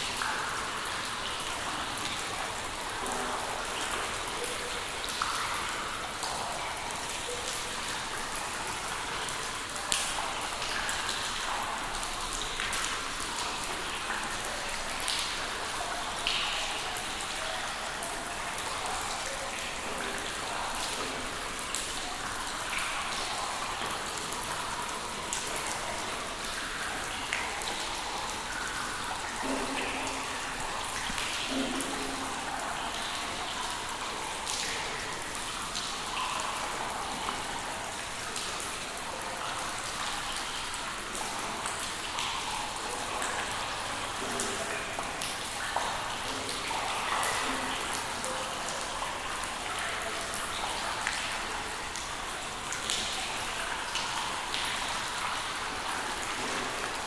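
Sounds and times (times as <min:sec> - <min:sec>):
water dripping in a cave: 0:00.0 - 0:57.0.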